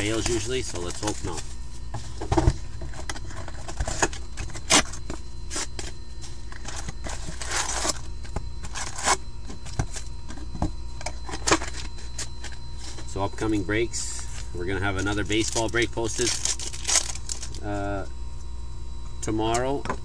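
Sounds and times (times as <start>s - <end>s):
card packs clicking and tapping: 0.0s - 1.4s, 15.0s - 17.6s
steady background hum: 0.0s - 20.0s
pack wrappers rustling: 14.2s - 17.6s.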